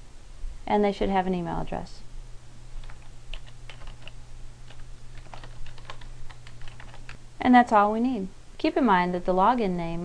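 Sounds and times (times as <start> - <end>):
steady low hum: 0.0 - 10.0
computer keyboard typing: 2.8 - 7.2.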